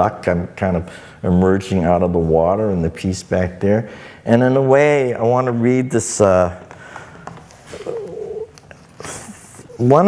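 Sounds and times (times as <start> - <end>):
soft wavering murmur: 7.6 - 10.0.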